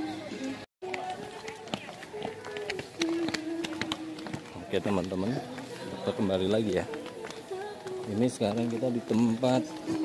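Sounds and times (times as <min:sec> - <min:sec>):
song in background: 0:00.0 - 0:10.0
footsteps on steps: 0:00.8 - 0:10.0.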